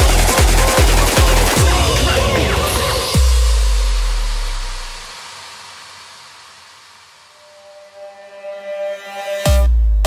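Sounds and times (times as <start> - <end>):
deep bass note: 0.0 - 5.1.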